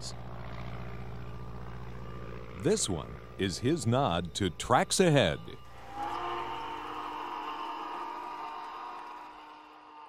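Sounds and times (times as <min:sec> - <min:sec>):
model plane engine drone: 0:00.0 - 0:10.0.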